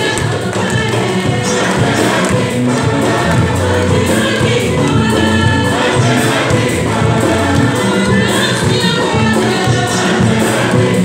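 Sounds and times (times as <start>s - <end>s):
church choir singing a hymn: 0.0s - 11.0s.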